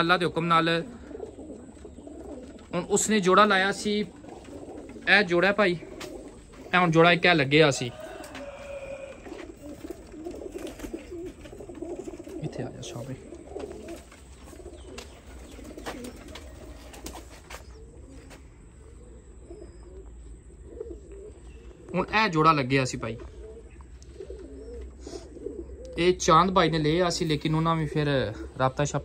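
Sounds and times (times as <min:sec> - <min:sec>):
pigeons cooing: 0:00.0 - 0:29.0.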